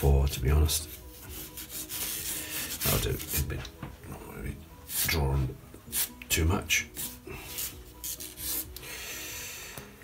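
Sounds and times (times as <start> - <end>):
marker scratching on paper: 1.2 - 3.3.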